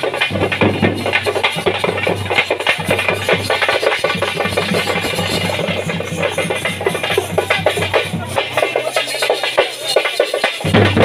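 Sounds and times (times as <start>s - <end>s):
drum-led music with fast beat: 0.0s - 11.0s.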